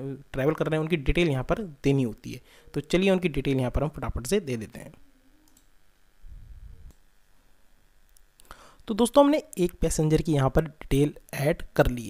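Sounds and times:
computer mouse clicks: 5.4s - 5.7s.

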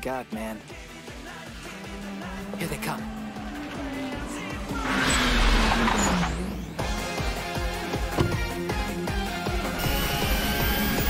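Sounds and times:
racing cars speeding past: 0.9s - 7.0s.

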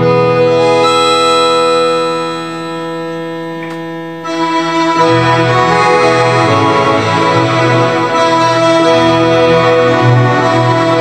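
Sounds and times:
electronic organ chord: 0.0s - 11.0s.

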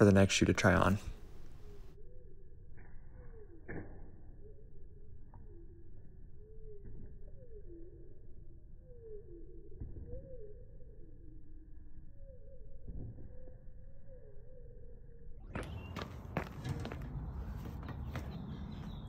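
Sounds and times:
footfalls on stone pavers: 15.5s - 19.0s.

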